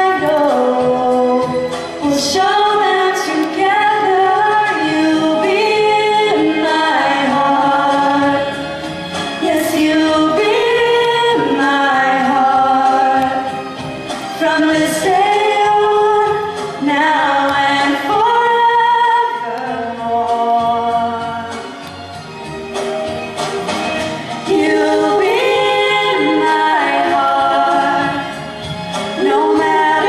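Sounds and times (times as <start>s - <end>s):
two women singing in harmony: 0.0s - 21.9s, 24.3s - 30.0s.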